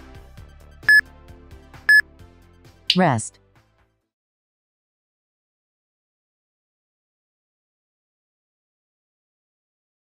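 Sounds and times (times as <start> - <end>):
background music: 0.0 - 4.0.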